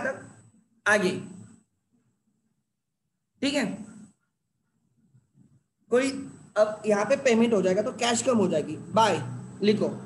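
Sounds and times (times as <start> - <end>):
man speaking: 5.9 - 10.0.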